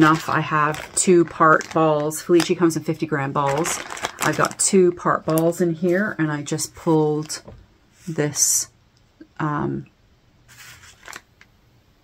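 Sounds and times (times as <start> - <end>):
plastic bag crinkling: 0.0 - 6.2, 10.6 - 11.3.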